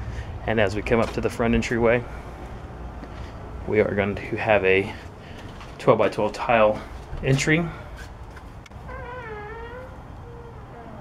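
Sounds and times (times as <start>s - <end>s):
door hinge squeaking: 8.8s - 11.0s.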